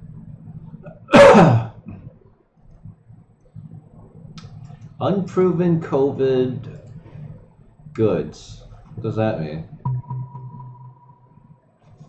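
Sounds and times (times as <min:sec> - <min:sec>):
man sneezing or coughing: 0:01.1 - 0:01.8.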